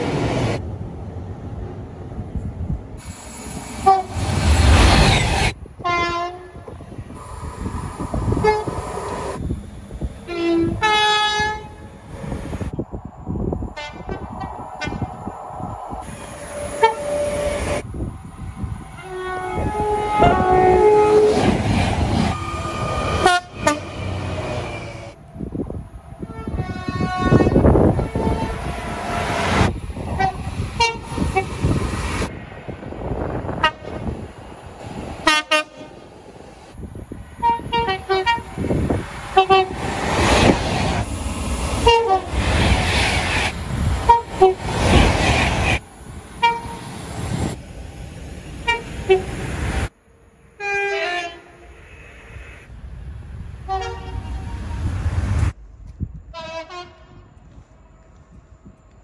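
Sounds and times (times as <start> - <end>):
train rushing past: 0.0 - 58.8
train horn two-tone blasts: 3.8 - 4.1, 5.8 - 6.7, 8.4 - 8.7, 10.3 - 12.0, 16.6 - 17.8, 19.0 - 21.5, 22.4 - 24.2, 26.2 - 28.9, 30.2 - 31.4, 33.6 - 34.0, 35.2 - 35.8, 37.4 - 38.5, 44.1 - 44.6, 46.4 - 46.8, 50.6 - 51.7, 53.7 - 54.7, 56.3 - 57.3.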